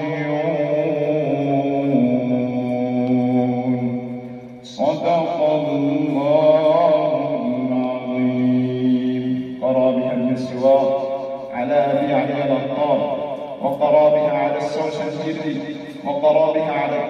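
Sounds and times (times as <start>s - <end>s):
man reciting melodically: 0.0s - 17.0s.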